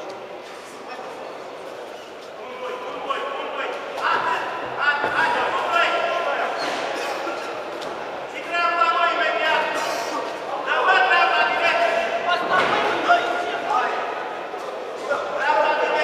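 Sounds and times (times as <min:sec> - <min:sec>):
people shouting in echoing hall: 0:02.4 - 0:14.4, 0:15.0 - 0:16.0.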